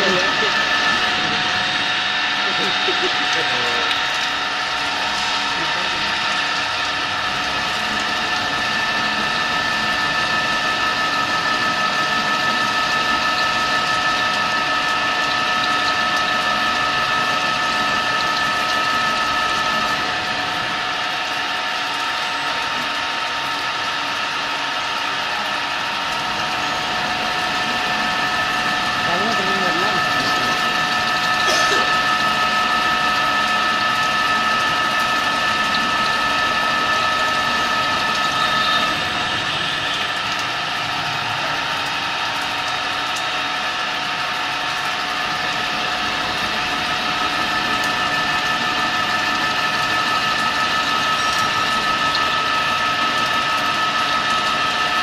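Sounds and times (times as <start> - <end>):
milling machine whining and grinding: 0.0 - 55.0.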